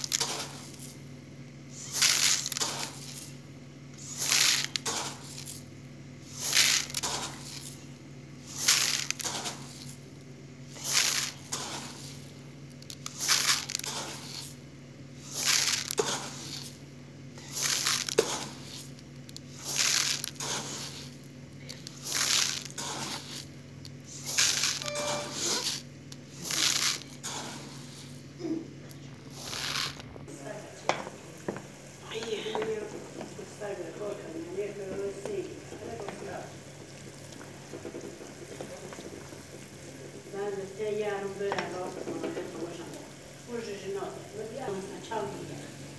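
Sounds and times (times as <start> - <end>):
rice pouring into plastic bowl: 0.0 - 1.0, 1.8 - 3.4, 4.0 - 5.6, 6.3 - 7.8, 8.4 - 10.0, 10.7 - 14.6, 15.2 - 16.8, 17.4 - 21.2, 21.8 - 23.5, 24.1 - 28.2, 29.3 - 30.0.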